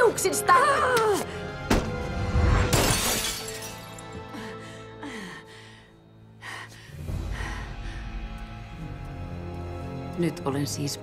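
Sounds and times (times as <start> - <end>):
film score music: 0.0 - 11.0
glass mirror shattering: 2.7 - 4.1.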